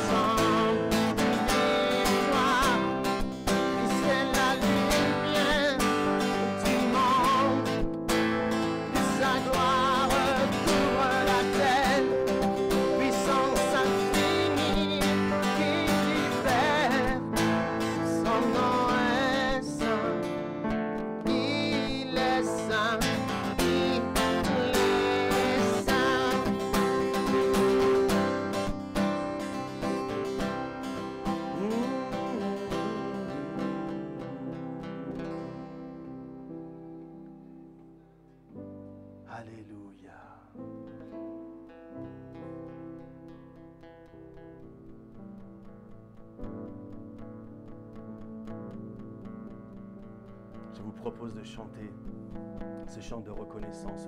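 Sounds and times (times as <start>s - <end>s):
man singing: 0.0s - 28.7s, 31.0s - 35.6s, 39.3s - 40.6s, 50.7s - 52.1s, 52.8s - 54.0s
strummed acoustic guitar: 0.0s - 54.0s.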